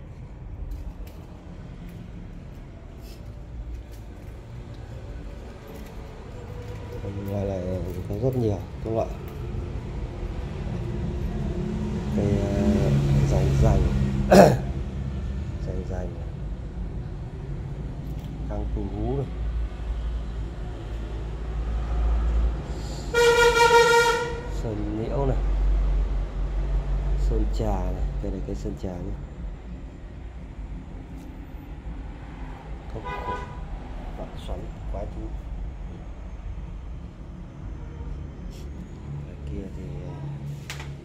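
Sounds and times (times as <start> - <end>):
street traffic rumble: 0.0 - 41.0
horn honk: 23.1 - 24.6, 33.0 - 33.7.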